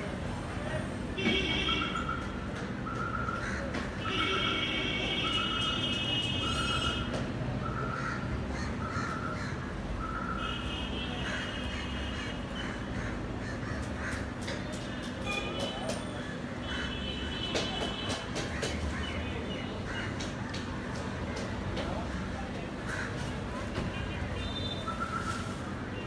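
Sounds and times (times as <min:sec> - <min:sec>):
background street noise: 0:00.0 - 0:26.0.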